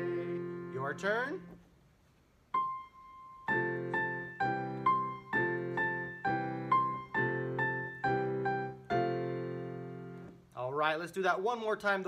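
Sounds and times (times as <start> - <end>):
piano keyboard melody: 0.0 - 1.6, 2.5 - 10.4.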